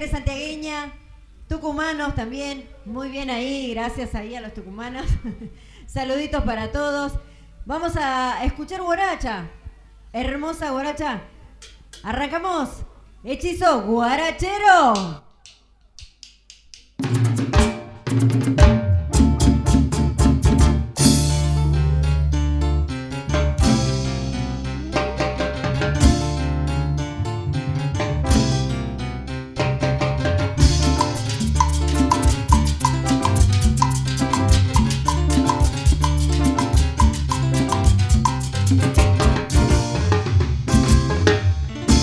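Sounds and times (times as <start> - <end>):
drum kit hits: 17.0 - 21.7, 23.3 - 42.0
band playing live: 17.0 - 42.0
low bass notes: 18.6 - 42.0.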